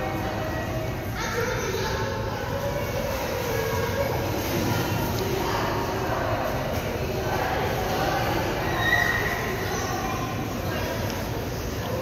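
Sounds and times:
faint voices: 0:00.0 - 0:12.0
children splashing in pool: 0:01.8 - 0:12.0.

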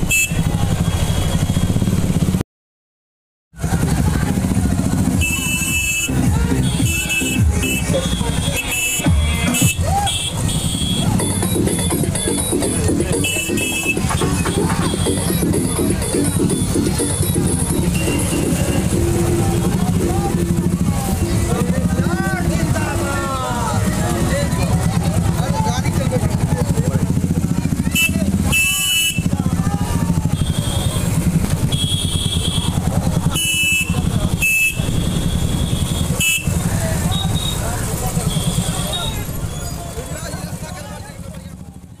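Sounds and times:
motorcycles running at low speed: 0:00.0 - 0:02.4, 0:03.5 - 0:42.0.

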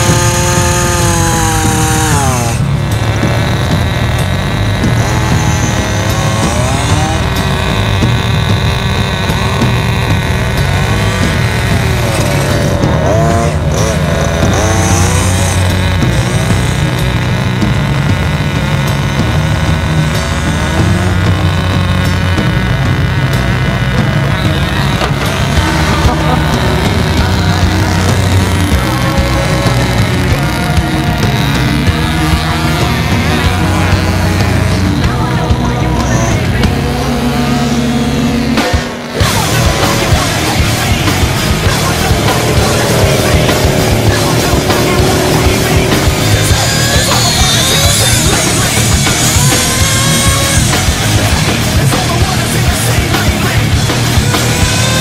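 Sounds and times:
background music: 0:00.0 - 0:55.0
small engine revving: 0:00.0 - 0:55.0.

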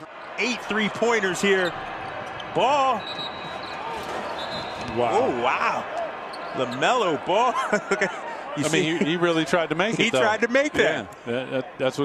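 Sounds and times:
sneakers squeaking on hardwood: 0:01.7 - 0:05.0.

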